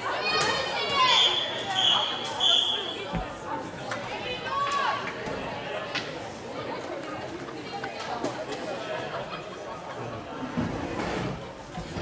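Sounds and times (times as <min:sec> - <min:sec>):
spectators chatting: 0:00.0 - 0:12.0
referee's whistle blasts: 0:01.1 - 0:03.0.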